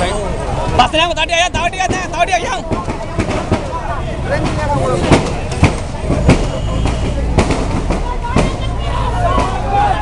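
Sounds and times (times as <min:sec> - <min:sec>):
crowd voices: 0:00.0 - 0:10.0
loud sharp bangs: 0:01.7 - 0:10.0.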